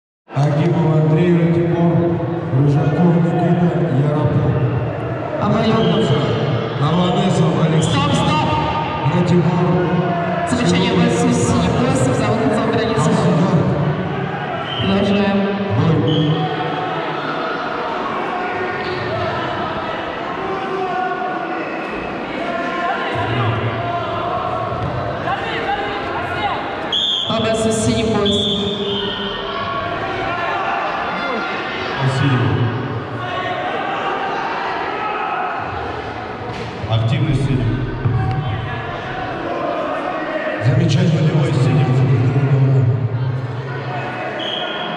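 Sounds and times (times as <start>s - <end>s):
many voices shouting in a hall: 0.3s - 44.9s
man speaking: 10.5s - 13.8s, 27.3s - 28.6s.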